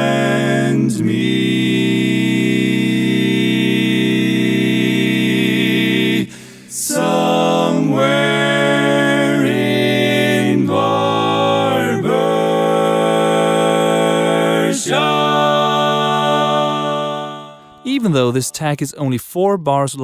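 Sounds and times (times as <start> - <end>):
barbershop quartet singing: 0.0 - 18.4.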